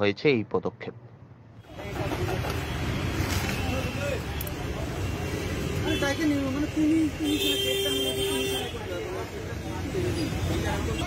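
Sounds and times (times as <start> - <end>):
traffic noise: 0.0 - 11.0
crowd babble: 1.7 - 11.0.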